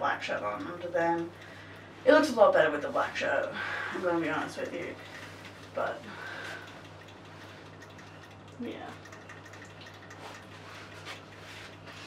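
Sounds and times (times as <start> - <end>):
steady low hum: 0.0 - 12.0
soft clothing rustles: 10.2 - 12.0.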